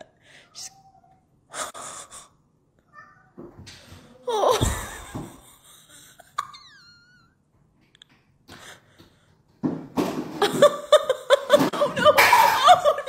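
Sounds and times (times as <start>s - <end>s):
woman laughing and exclaiming: 11.0s - 13.0s.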